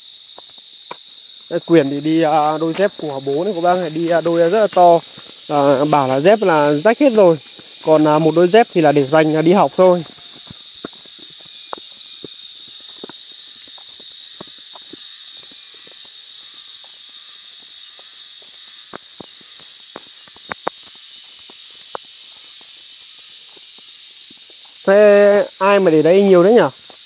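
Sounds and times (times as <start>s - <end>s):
insects buzzing: 0.0s - 27.0s
footsteps on dry leaves: 1.5s - 24.9s.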